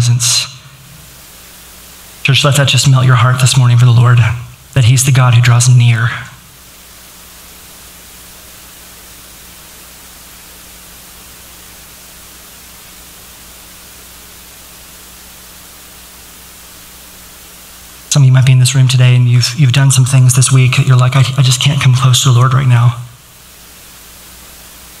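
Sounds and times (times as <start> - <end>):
faint low hum: 0.0 - 25.0
steady hiss: 0.0 - 25.0.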